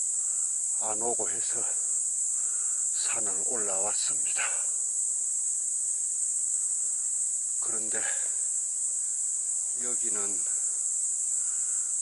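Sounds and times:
insects chorus: 0.0s - 12.0s.

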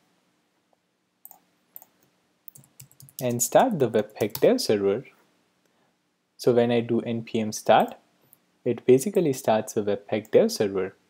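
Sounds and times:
computer keystrokes: 1.2s - 3.4s.

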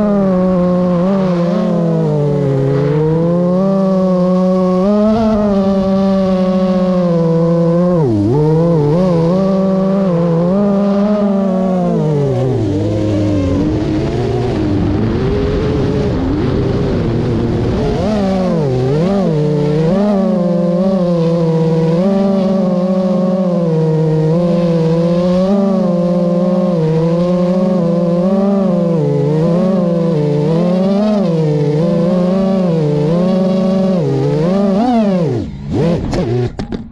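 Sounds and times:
drone motors whining: 0.0s - 36.9s.

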